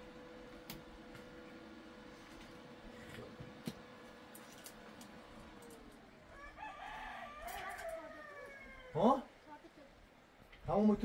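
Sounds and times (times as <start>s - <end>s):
rooster crowing: 6.2s - 9.3s.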